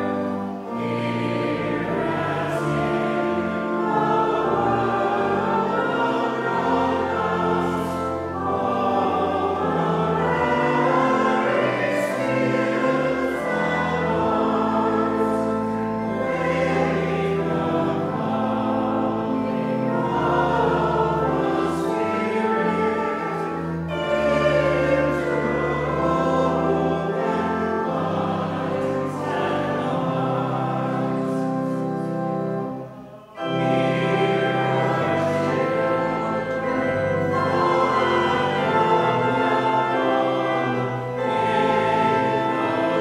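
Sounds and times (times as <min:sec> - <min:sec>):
congregation singing a hymn: 0:00.0 - 0:43.0
sustained instrumental chords: 0:00.0 - 0:43.0.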